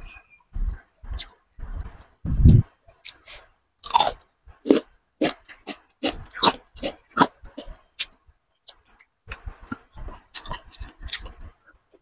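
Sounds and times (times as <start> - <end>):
wet mouth sounds: 1.0 - 8.1
crunchy chewing of cucumber: 1.0 - 11.6.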